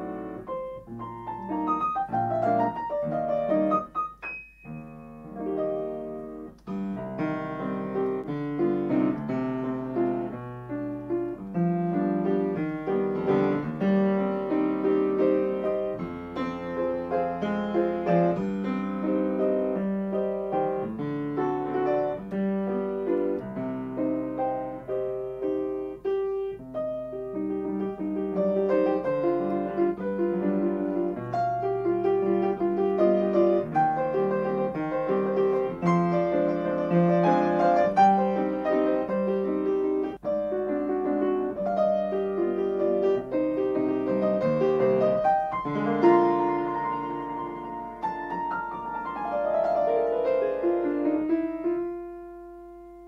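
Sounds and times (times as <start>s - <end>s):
grand piano waltz: 0.0s - 53.0s.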